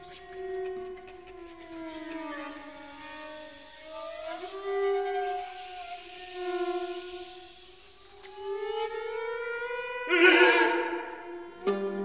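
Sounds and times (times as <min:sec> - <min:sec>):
whispered consonants: 0:00.0 - 0:08.0.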